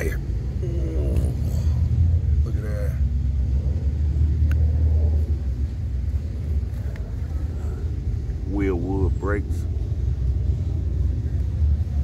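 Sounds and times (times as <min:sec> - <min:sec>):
low rumble: 0:00.0 - 0:12.0.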